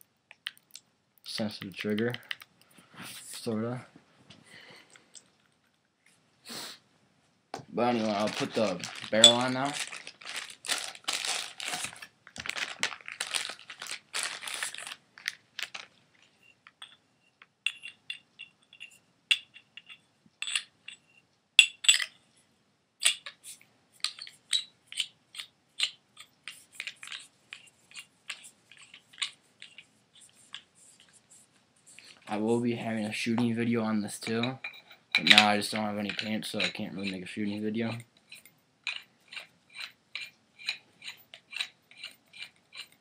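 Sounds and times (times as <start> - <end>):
rustling and rattling: 7.9 - 17.0.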